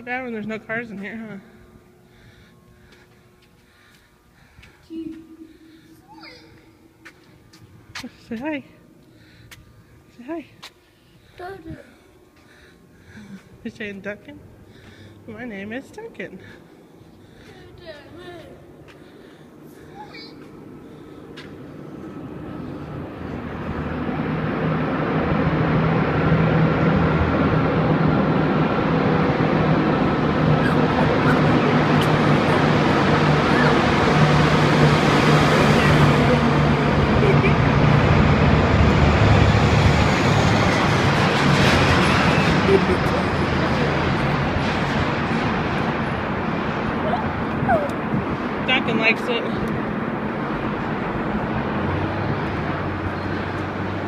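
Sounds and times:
faint steady hum: 0.0s - 24.1s
footsteps on concrete: 2.8s - 5.4s, 6.5s - 8.2s, 18.8s - 19.2s, 20.4s - 20.6s, 21.3s - 21.6s
traffic rushing in a tunnel: 14.6s - 54.0s
low engine hum: 18.6s - 54.0s.

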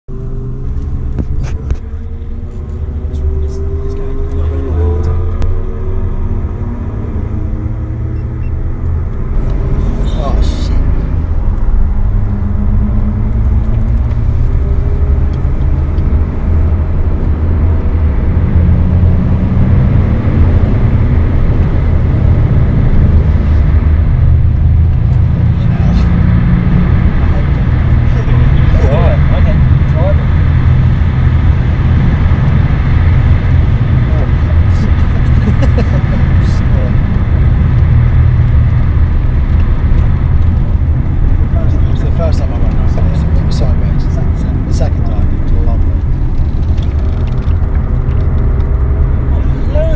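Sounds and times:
road and tyre noise: 0.0s - 49.9s
diesel engine drone in cabin: 0.1s - 49.9s.

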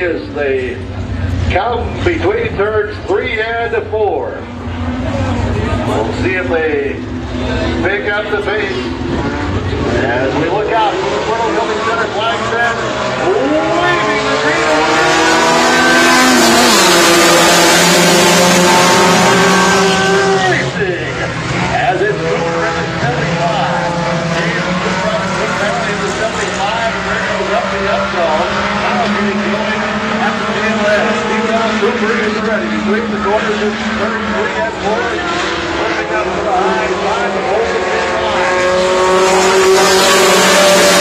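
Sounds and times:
racing car engines revving: 0.0s - 41.0s.

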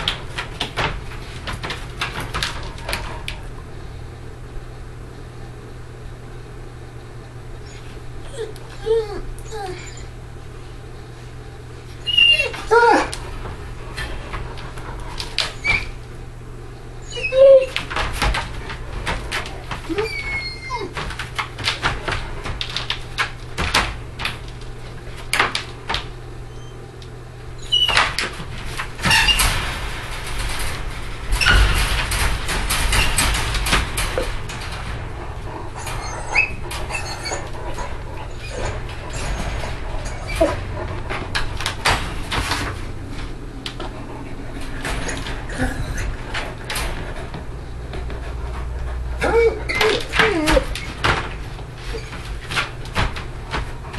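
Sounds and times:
wire crate rattling and clinking: 0.0s - 3.6s, 27.6s - 53.9s
dog whining: 7.6s - 10.2s, 12.0s - 13.2s, 15.4s - 16.0s, 17.0s - 18.0s, 19.5s - 21.2s, 27.6s - 28.1s, 35.4s - 41.2s, 44.1s - 46.2s, 49.0s - 51.2s, 51.8s - 52.3s.

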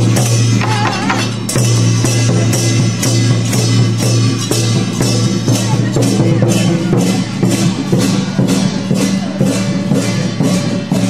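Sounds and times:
barrel drum beating: 0.0s - 11.0s
hand cymbals struck: 0.0s - 11.0s.

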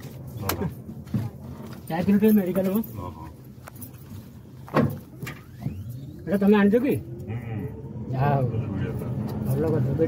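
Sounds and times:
road noise inside vehicle: 0.0s - 10.0s.

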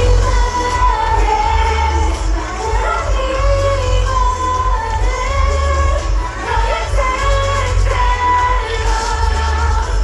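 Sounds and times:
backing track with heavy bass: 0.0s - 10.0s
women singing pop song: 0.0s - 10.0s.

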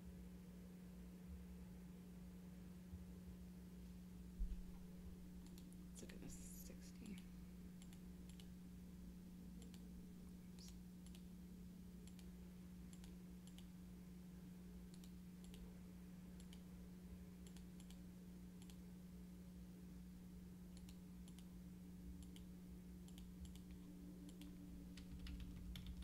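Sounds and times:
low electrical hum: 0.0s - 26.0s
computer mouse clicks: 5.4s - 5.8s, 7.0s - 8.5s, 9.6s - 9.8s, 10.6s - 11.3s, 12.0s - 12.3s, 12.9s - 13.7s, 14.9s - 15.6s, 16.4s - 16.6s, 17.4s - 18.0s, 18.6s - 18.8s, 20.7s - 21.5s, 22.2s - 26.0s.

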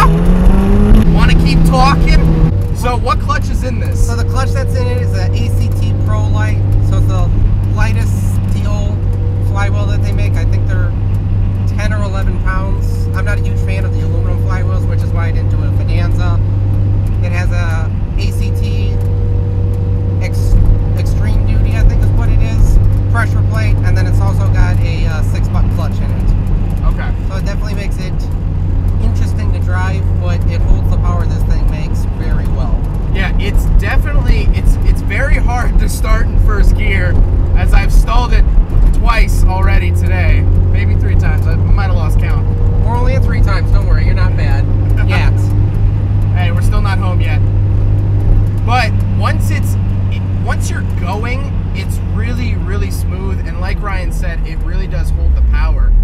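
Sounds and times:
car engine droning in cabin: 0.0s - 56.0s
voices: 0.9s - 16.5s, 17.1s - 19.4s, 20.0s - 47.5s, 48.1s - 56.0s.

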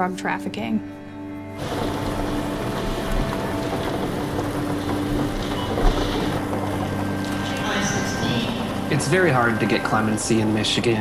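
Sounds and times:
low steady hum: 1.4s - 11.0s
balls clattering: 1.6s - 11.0s.

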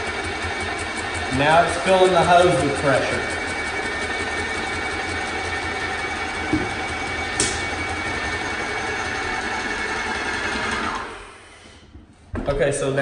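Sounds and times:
paint sprayer motor and pump: 0.0s - 11.9s.

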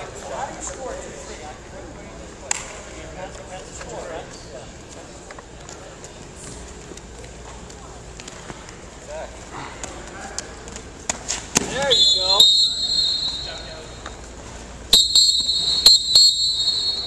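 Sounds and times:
background crowd voices: 0.0s - 15.5s.

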